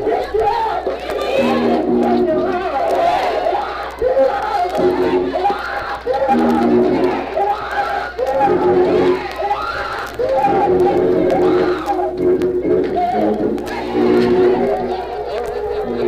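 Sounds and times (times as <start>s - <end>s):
organ playing held chords: 0.0s - 2.9s, 3.5s - 16.0s
congregation shouting: 0.0s - 16.0s.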